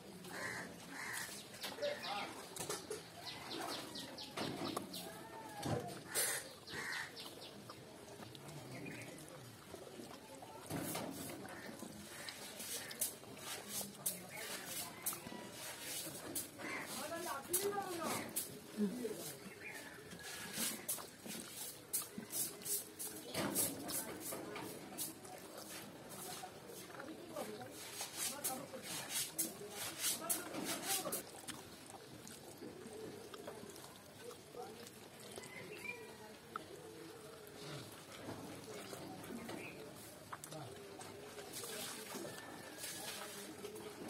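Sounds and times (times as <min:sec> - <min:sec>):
wet chewing: 0:00.1 - 0:44.0
chewing smacks: 0:31.2 - 0:42.6.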